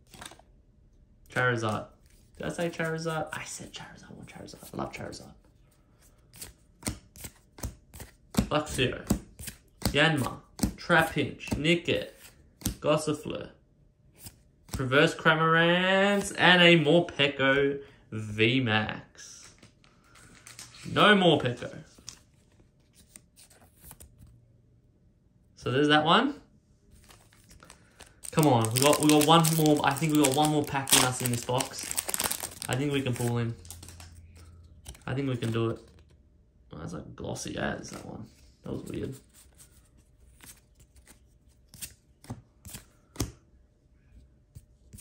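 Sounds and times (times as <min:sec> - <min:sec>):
cards clicking and snapping: 0:34.7 - 0:35.6.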